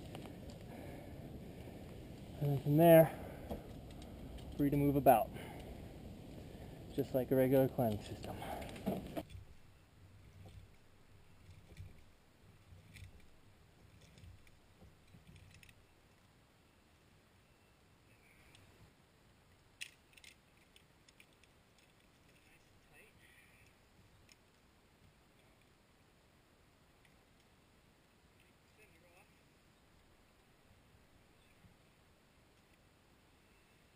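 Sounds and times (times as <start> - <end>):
faint low rumble: 0.0 - 15.1
faint clicks: 3.4 - 4.6, 18.3 - 18.8, 23.6 - 25.8, 27.0 - 27.6.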